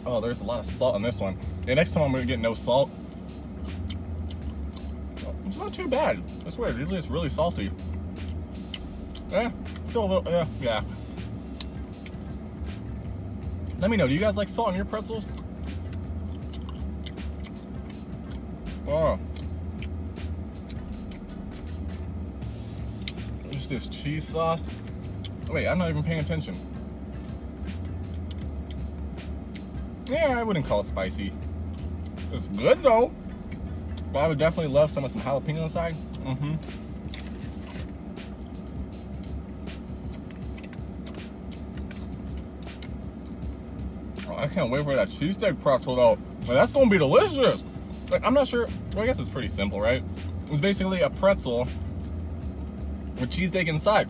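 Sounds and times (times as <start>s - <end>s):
background music with low beat: 0.0s - 54.0s
low hum inside car: 0.0s - 54.0s
person chewing: 3.6s - 4.9s, 7.8s - 9.8s, 15.2s - 18.5s, 20.6s - 22.1s, 22.8s - 23.5s, 27.8s - 28.9s, 33.2s - 34.1s, 36.0s - 43.5s.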